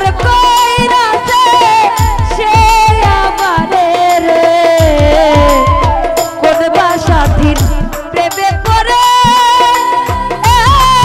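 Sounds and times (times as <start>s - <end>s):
band with drums and cymbals: 0.0s - 11.0s
woman singing: 0.0s - 11.0s.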